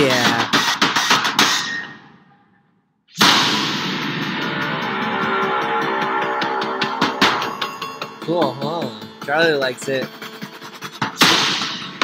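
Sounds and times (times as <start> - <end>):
loud impact hit: 3.2 - 8.2
sustained drone: 3.2 - 11.2
horror film music: 3.2 - 12.0.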